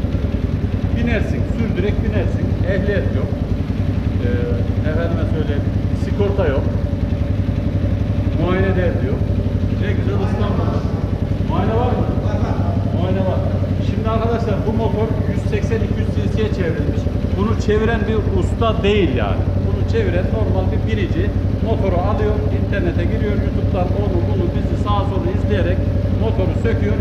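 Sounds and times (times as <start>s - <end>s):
motorcycle engine idling: 0.0s - 27.0s
voices talking: 0.0s - 27.0s.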